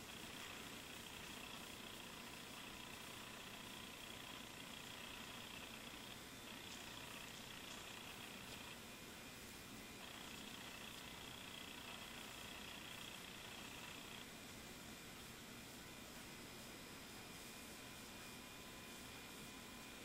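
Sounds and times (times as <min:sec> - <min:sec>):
faint room hiss: 0:00.0 - 0:20.0
high thin whine: 0:00.0 - 0:20.0.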